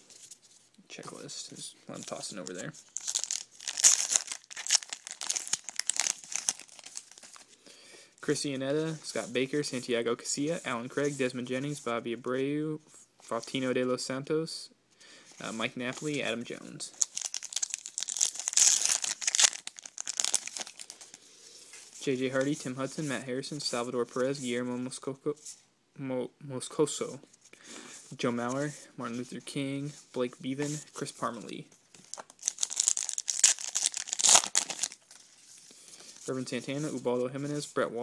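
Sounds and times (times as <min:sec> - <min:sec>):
wrapper tearing and crinkling: 0:02.9 - 0:07.4, 0:17.0 - 0:21.0, 0:32.1 - 0:35.4.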